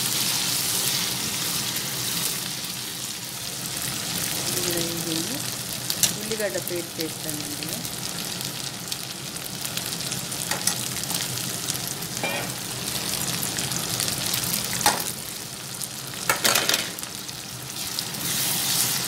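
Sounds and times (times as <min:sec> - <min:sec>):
vegetables sizzling in hot oil: 0:00.0 - 0:19.0.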